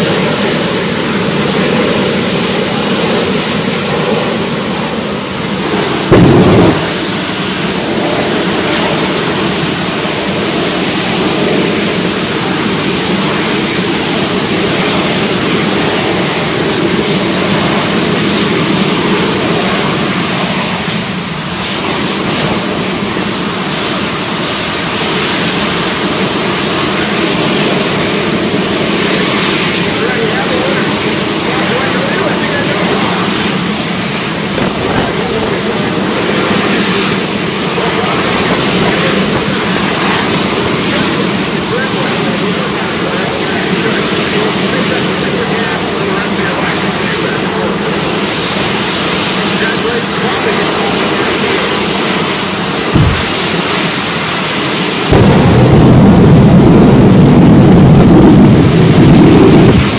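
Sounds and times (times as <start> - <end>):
high whine: 0.0 - 59.9
turbine engines running loudly: 0.0 - 59.9.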